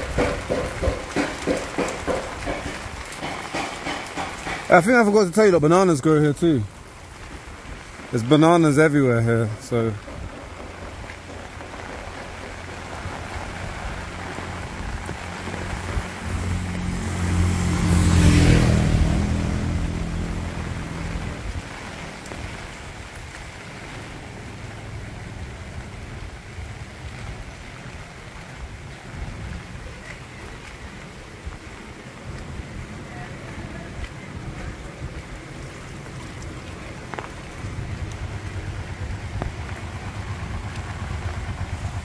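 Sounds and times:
steady rain on a wet road: 0:00.0 - 0:42.0
vehicle driving past on wet road: 0:00.0 - 0:42.0.

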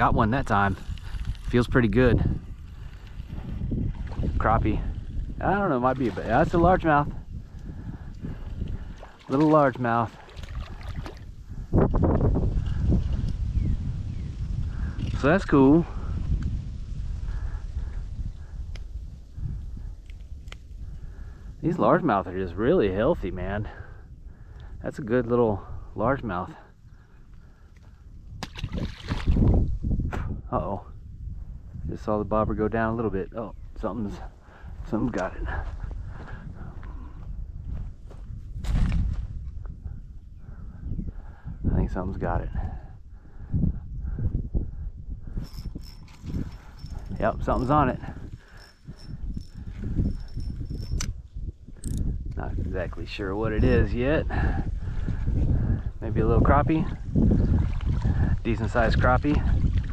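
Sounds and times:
wind rumbling on microphone: 0:00.0 - 0:59.9
fishing reel gears clicking: 0:45.4 - 0:47.7, 0:48.4 - 0:51.1.

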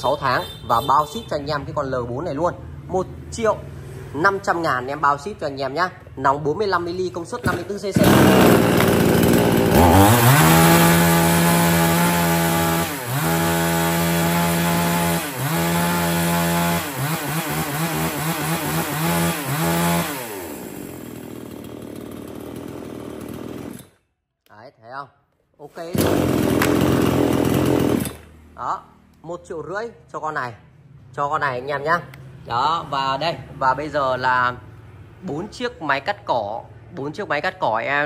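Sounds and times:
chainsaw revving and idling: 0:07.3 - 0:24.0, 0:25.9 - 0:28.4.

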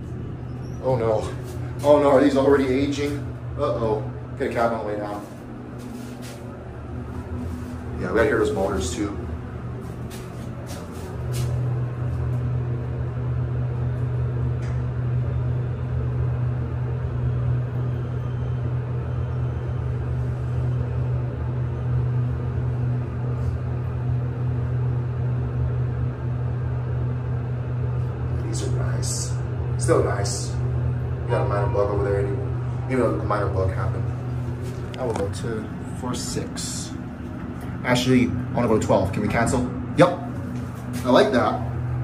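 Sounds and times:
elevator hum: 0:00.0 - 0:42.0.

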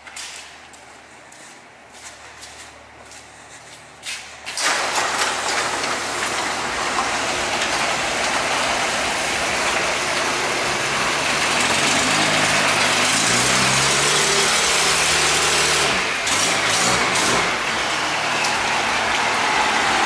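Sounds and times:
roll-up garage door opening: 0:04.1 - 0:20.0
diesel truck engine idling: 0:06.3 - 0:20.0.

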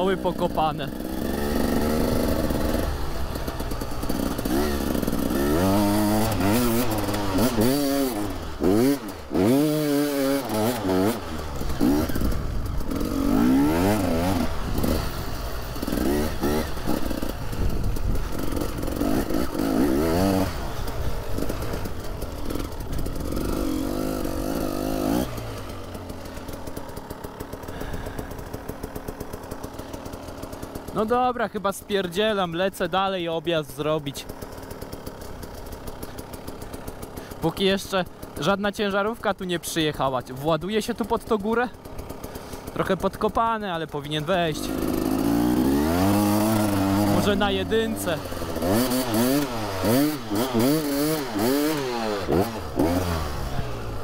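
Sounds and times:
motorcycle engine revving: 0:00.0 - 0:54.0.

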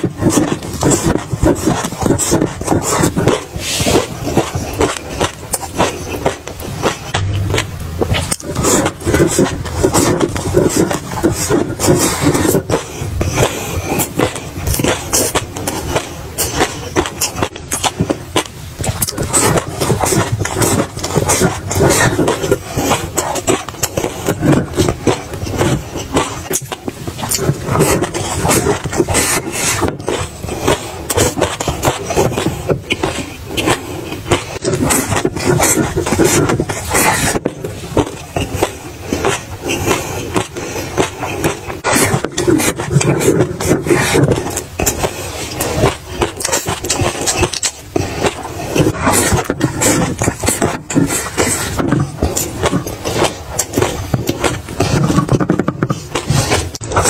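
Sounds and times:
chewing and crunching food: 0:00.0 - 0:57.0.

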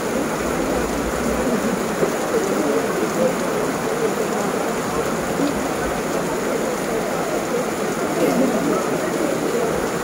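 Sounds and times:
heavy rain: 0:00.0 - 0:10.0.

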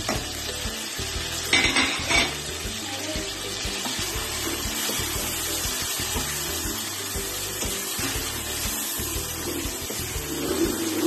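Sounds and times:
background music: 0:00.0 - 0:11.0
food sizzling in hot oil: 0:00.0 - 0:11.0.

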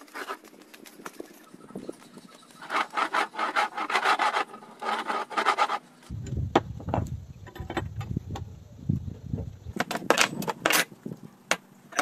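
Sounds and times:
metal rasping: 0:02.6 - 0:05.9.

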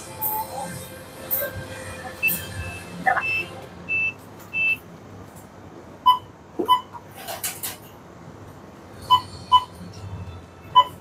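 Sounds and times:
high electronic beeps: 0:02.2 - 0:04.8.

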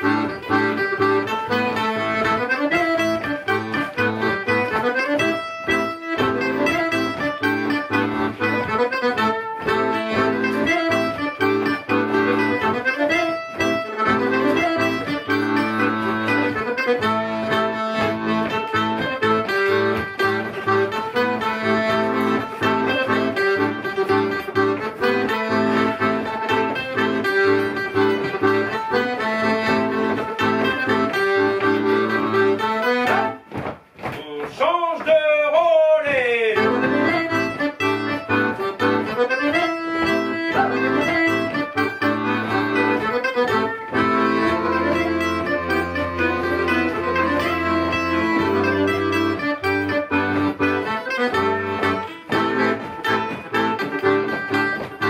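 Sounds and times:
live band playing folk dance tune: 0:00.0 - 0:55.0.

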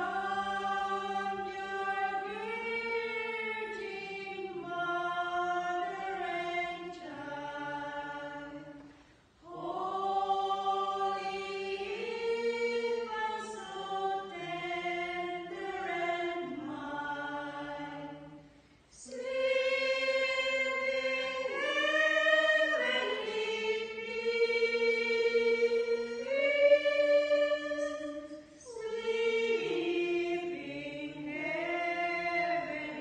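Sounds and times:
women singing a carol: 0:00.0 - 0:33.0.

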